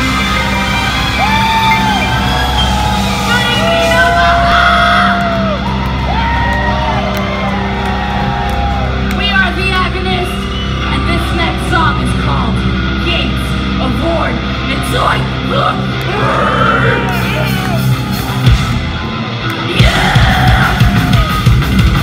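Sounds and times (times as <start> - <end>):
live heavy metal band: 0.0 - 9.2, 10.0 - 22.0
crowd yelling and whooping: 0.0 - 9.4, 16.0 - 22.0.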